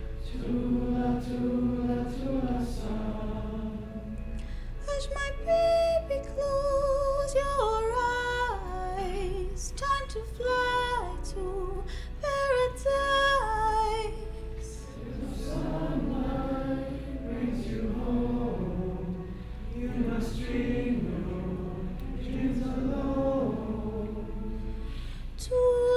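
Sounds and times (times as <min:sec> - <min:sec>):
woman singing a lullaby: 0:04.8 - 0:14.9, 0:25.4 - 0:25.9.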